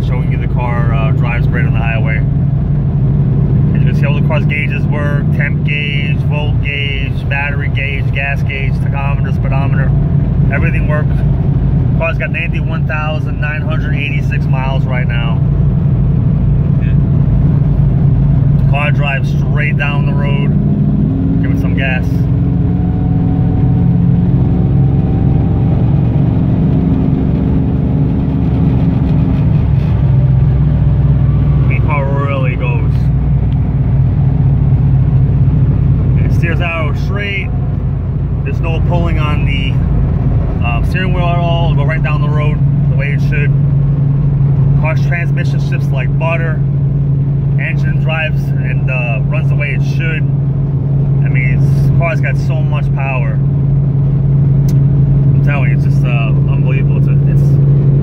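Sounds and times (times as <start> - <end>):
man talking: 0.0 - 2.3, 3.7 - 11.3, 12.0 - 15.4, 18.6 - 20.6, 21.4 - 22.3, 31.6 - 33.2, 36.2 - 37.6, 38.4 - 39.9, 40.6 - 43.6, 44.8 - 46.6, 47.6 - 50.3, 51.2 - 53.4, 55.4 - 57.6
car engine drone: 0.0 - 58.0
road noise: 0.0 - 58.0.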